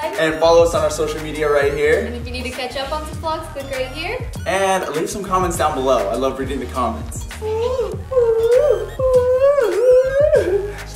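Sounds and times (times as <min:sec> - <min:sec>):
upbeat music with sliding lead: 0:00.0 - 0:10.9.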